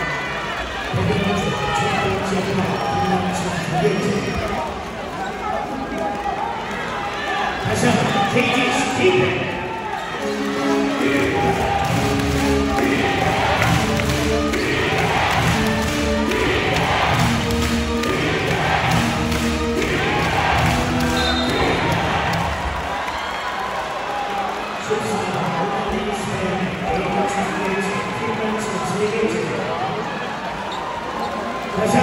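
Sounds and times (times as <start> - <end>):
crowd chanting and cheering: 0.0 - 32.0
music over loudspeakers: 10.2 - 22.7.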